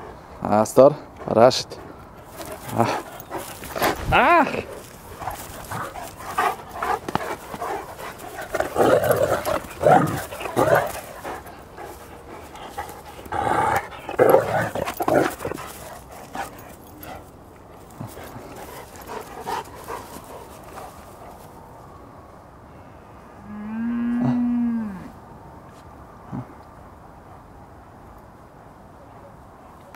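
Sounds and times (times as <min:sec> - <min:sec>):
dogs vocalizing and barking: 0:02.0 - 0:21.5.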